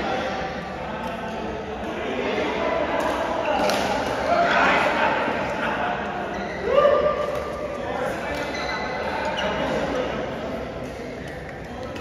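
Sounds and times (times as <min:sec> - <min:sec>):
voices in sports hall: 0:00.0 - 0:12.0.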